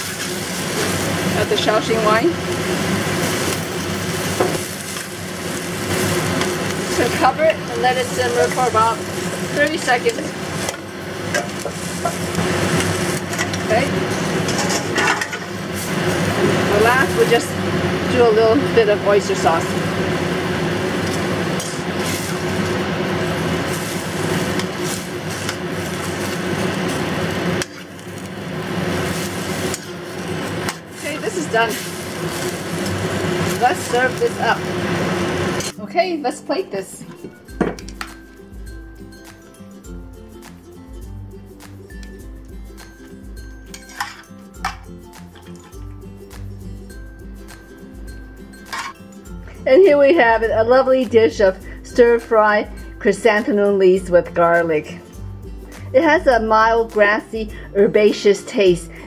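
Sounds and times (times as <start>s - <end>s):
metal tongs scraping a pan: 0.0s - 2.2s, 3.0s - 16.0s, 21.0s - 22.7s, 23.6s - 28.3s, 28.9s - 34.6s, 43.7s - 44.8s, 48.7s - 49.0s
vegetables sizzling in hot oil: 0.0s - 35.8s
steady hum: 0.0s - 36.1s.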